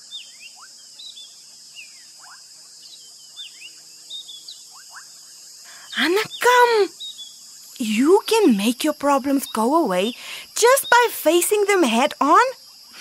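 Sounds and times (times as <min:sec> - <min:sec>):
high-pitched insect buzz: 0:00.0 - 0:13.0.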